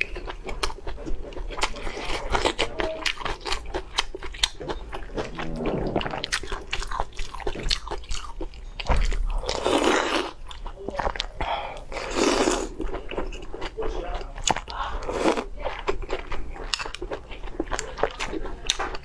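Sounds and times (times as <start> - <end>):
wet chewing with smacks: 0.0 - 19.0
slurping: 4.6 - 7.7.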